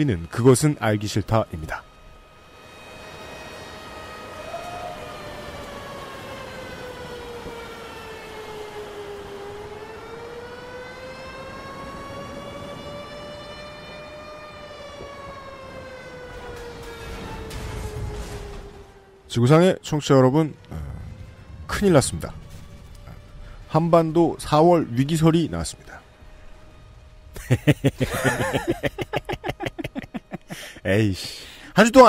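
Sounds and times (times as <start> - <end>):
air-raid siren wailing: 0.0 - 32.0.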